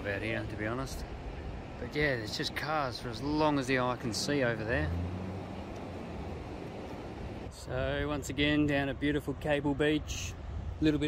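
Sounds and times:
surf rumbling: 0.0s - 11.0s
wind: 0.0s - 11.0s.

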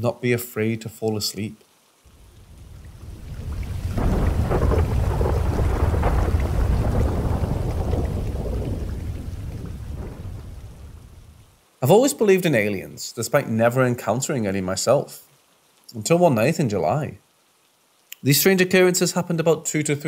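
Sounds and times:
rain: 0.0s - 20.0s
thunder rumbling: 2.1s - 11.5s.

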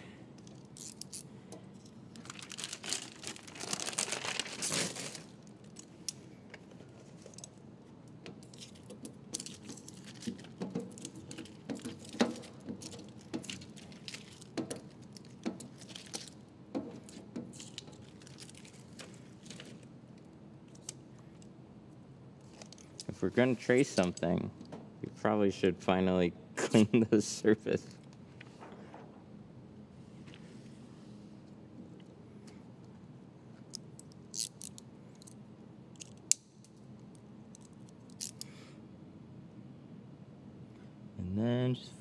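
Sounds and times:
plastic film crinkling: 2.2s - 5.5s, 9.4s - 16.4s, 17.6s - 19.9s.

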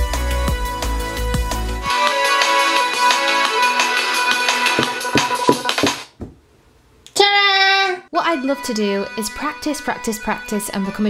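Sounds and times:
sharp percussive hits: 4.5s - 6.2s.

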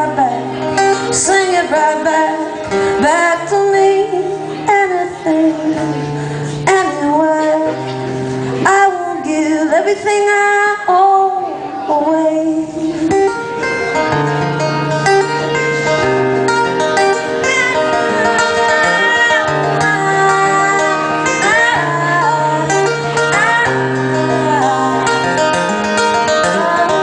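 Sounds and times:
woman singing: 0.0s - 13.5s, 17.1s - 25.5s, 26.1s - 27.0s
strummed acoustic guitar: 0.0s - 27.0s.

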